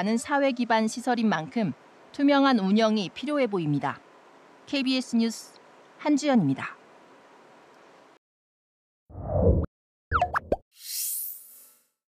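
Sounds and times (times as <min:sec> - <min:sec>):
bubbly plops with sliding pitch: 0:10.1 - 0:10.6.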